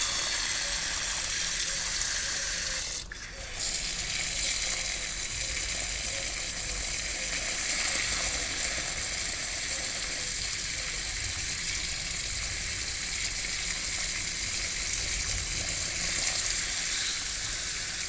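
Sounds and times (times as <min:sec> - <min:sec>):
hose nozzle spraying water: 0:00.0 - 0:18.0.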